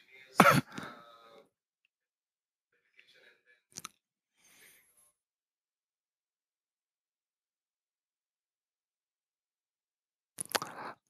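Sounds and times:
person clearing throat: 0.4s - 1.0s.

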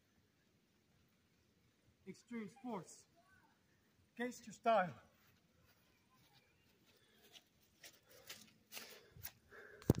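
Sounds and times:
soft footsteps on wet grass: 4.1s - 10.0s.

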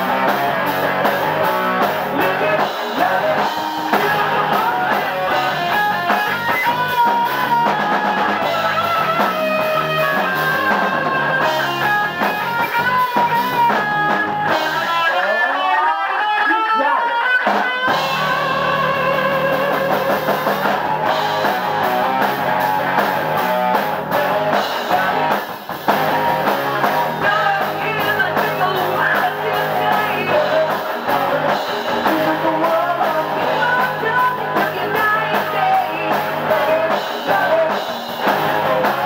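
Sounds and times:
rock band playing: 0.0s - 39.0s.

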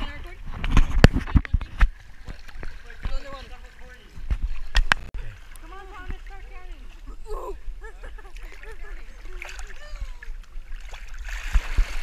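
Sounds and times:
pool water splashing: 0.0s - 12.0s.

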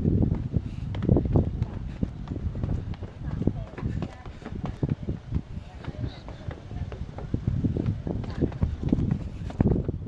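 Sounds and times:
quick footsteps: 0.0s - 10.0s
faint voices: 0.6s - 10.0s.

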